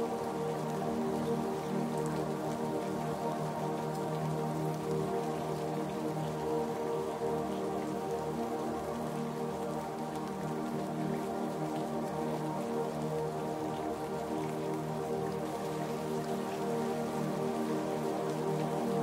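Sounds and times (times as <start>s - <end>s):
ambient music with held chords: 0.0s - 19.0s
falling rain: 0.0s - 19.0s.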